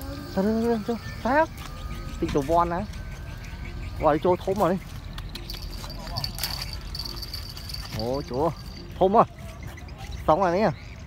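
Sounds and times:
thin steady high tone: 0.0s - 9.4s.

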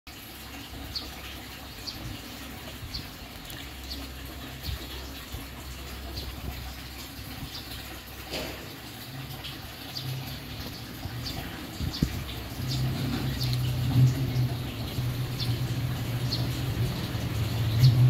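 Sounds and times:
steady low rumble: 10.9s - 18.0s.

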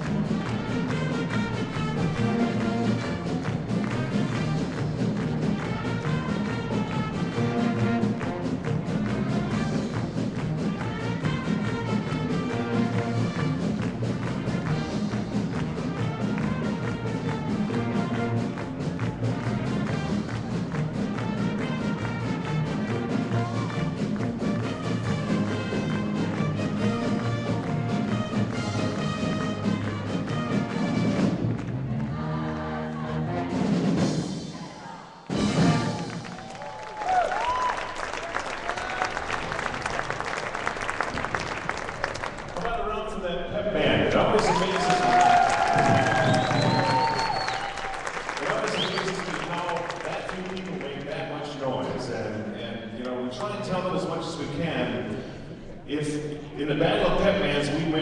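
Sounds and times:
brass band playing a polka: 0.0s - 34.6s, 35.3s - 36.5s, 43.9s - 52.6s
crowd cheering and applauding: 0.0s - 42.8s, 44.0s - 52.2s.

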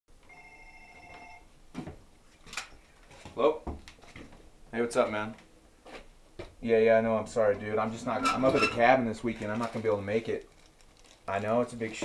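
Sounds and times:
telephone ringing: 0.2s - 1.5s.

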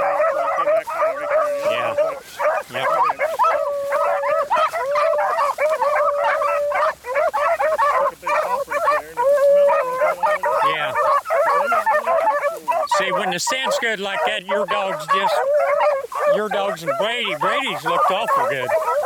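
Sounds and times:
hounds baying: 0.0s - 19.0s
short choppy barks: 0.0s - 19.0s.

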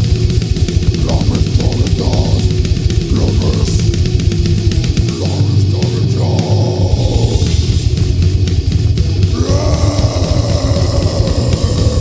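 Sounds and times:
death metal band playing: 0.0s - 12.0s
distorted electric guitars: 0.0s - 12.0s.

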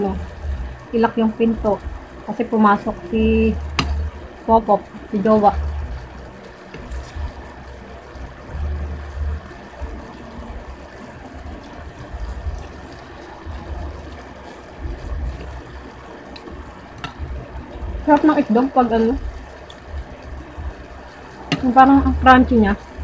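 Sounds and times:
dull low bumps: 0.0s - 23.0s.

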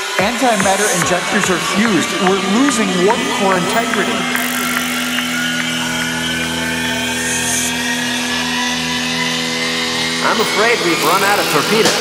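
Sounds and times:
hissing noise wash: 0.0s - 12.0s
synthesizer drone: 0.0s - 12.0s.

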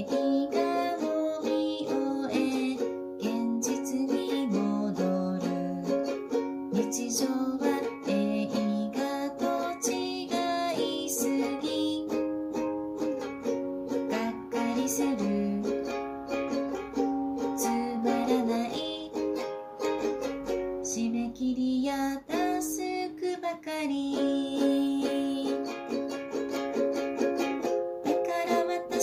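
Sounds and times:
ukulele playing slow song: 0.0s - 29.0s.

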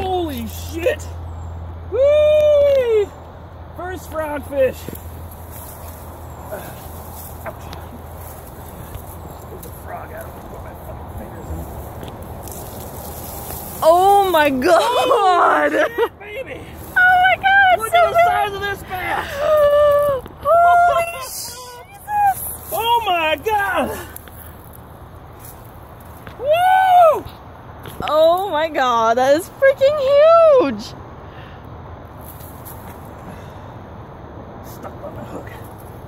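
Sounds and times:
man exclaiming and laughing: 1.9s - 3.2s, 14.0s - 24.2s
rustling through tall grass: 4.8s - 15.0s, 16.6s - 26.4s.

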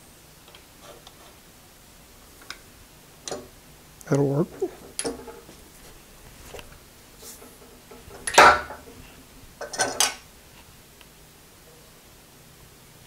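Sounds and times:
steel rod clinking and rattling: 7.2s - 10.2s.

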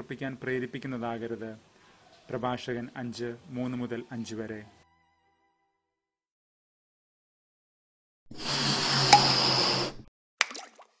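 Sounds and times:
water-drop plop: 10.4s - 11.0s.

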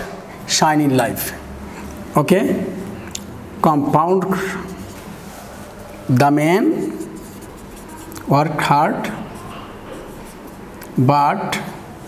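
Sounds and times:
marker scratching on whiteboard: 4.2s - 10.8s.

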